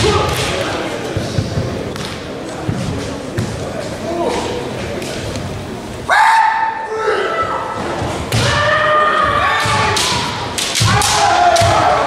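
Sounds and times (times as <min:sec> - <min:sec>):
people shouting: 0:06.1 - 0:12.0.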